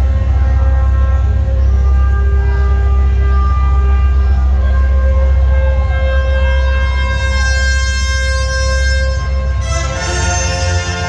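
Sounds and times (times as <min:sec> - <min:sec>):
band playing held chords: 0:00.0 - 0:11.0
deep bass: 0:00.0 - 0:11.0.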